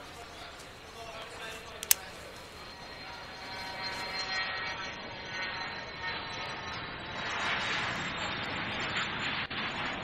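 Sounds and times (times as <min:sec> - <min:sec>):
jet aircraft noise: 0:00.0 - 0:10.0.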